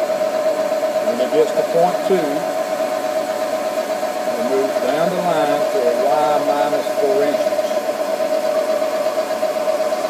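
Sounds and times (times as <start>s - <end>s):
milling machine whine: 0.0s - 10.0s.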